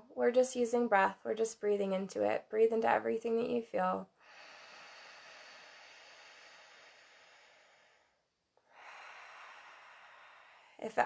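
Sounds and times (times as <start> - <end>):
slow soft breathing: 4.1 - 11.0.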